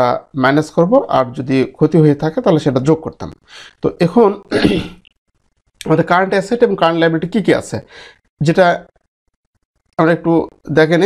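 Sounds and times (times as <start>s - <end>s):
man clearing his throat: 4.5s - 5.0s.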